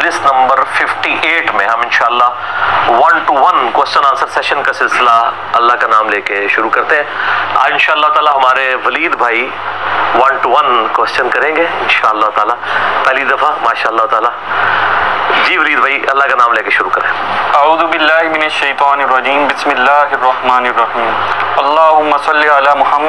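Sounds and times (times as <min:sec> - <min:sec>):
man lecturing: 0:00.0 - 0:14.5, 0:15.3 - 0:23.0.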